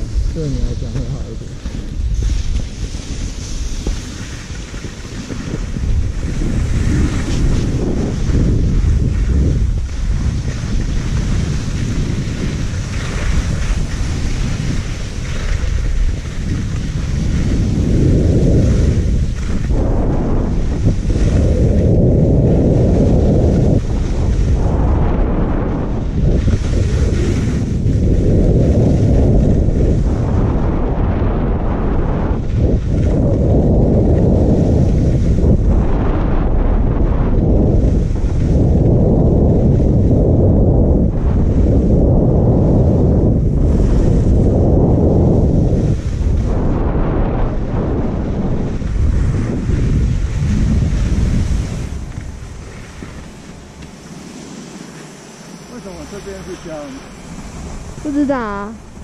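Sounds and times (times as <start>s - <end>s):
skis sliding on snow: 0.0s - 59.0s
wind rushing over microphone: 0.0s - 59.0s.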